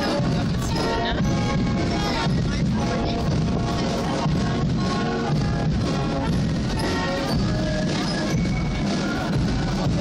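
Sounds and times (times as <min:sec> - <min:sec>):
brass marching band: 0:00.0 - 0:10.0
drums: 0:00.0 - 0:10.0.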